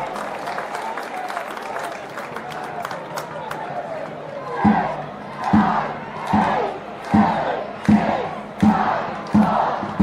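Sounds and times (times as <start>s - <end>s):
crowd noise: 0.0s - 10.0s
people chanting and shouting: 3.9s - 10.0s
steady drum beat: 4.6s - 10.0s.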